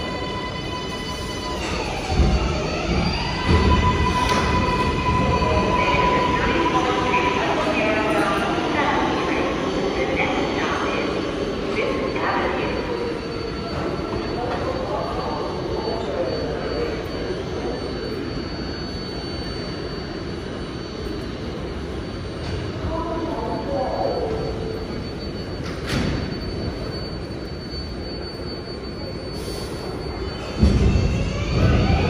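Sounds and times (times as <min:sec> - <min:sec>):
train rumble: 0:00.0 - 0:17.7, 0:29.8 - 0:32.0.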